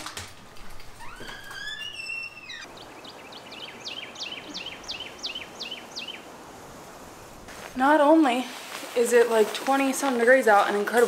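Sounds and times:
birds singing whistled notes: 0:01.6 - 0:06.3.

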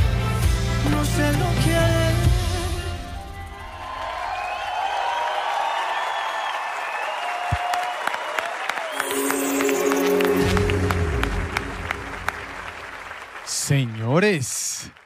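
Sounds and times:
audience applause: 0:03.6 - 0:15.0
music with held notes: 0:09.0 - 0:12.7.

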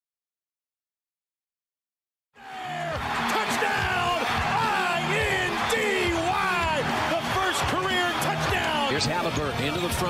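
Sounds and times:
excited broadcast voices: 0:02.4 - 0:09.4.

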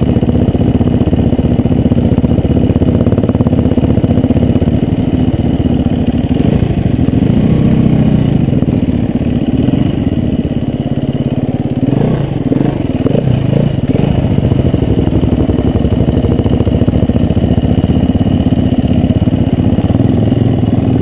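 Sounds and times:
dirt bike engine revving: 0:00.0 - 0:10.6, 0:11.7 - 0:21.0.

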